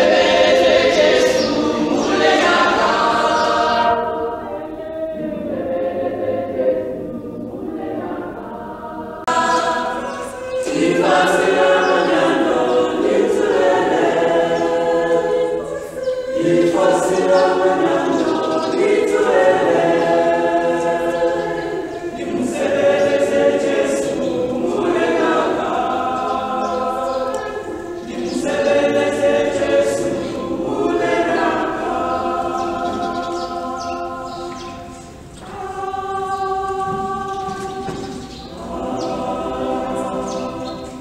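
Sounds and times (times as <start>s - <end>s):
mixed choir singing in harmony: 0.0s - 41.0s.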